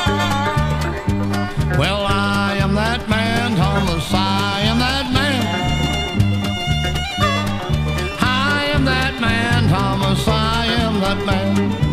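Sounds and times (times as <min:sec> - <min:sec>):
bluegrass band playing: 0:00.0 - 0:11.9
steady bass notes: 0:00.0 - 0:11.9
sliding lead line: 0:00.4 - 0:11.8.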